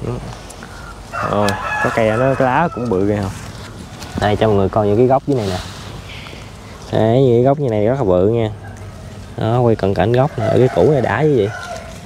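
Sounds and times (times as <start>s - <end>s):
man talking: 0.0s - 3.5s, 4.1s - 8.6s, 9.4s - 11.6s
rooster crowing: 1.0s - 3.4s, 9.9s - 12.0s.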